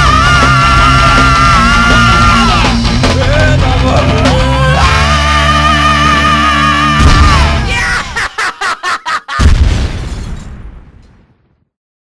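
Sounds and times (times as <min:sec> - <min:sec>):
deep explosion boom: 0:07.0 - 0:07.7, 0:09.4 - 0:11.7.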